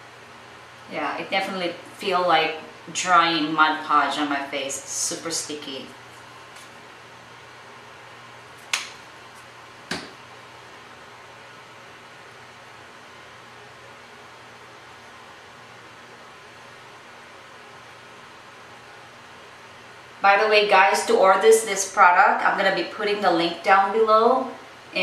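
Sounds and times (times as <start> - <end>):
room hum and hiss: 0.0 - 25.0.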